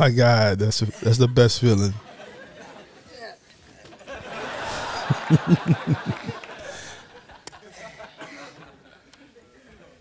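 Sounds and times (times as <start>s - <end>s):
man chuckling: 4.6s - 7.0s.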